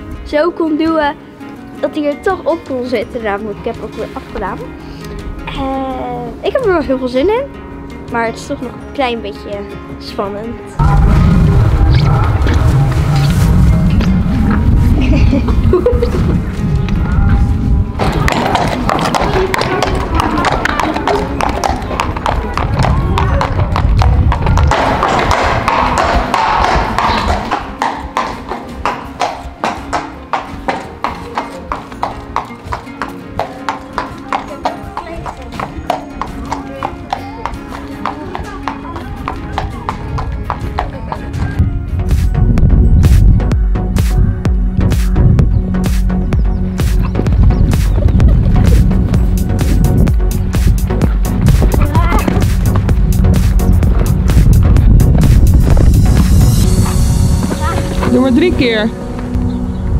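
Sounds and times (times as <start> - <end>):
background music: 0.0 - 59.9
horse hooves clip-clopping on paving: 18.0 - 41.6, 46.0 - 59.7.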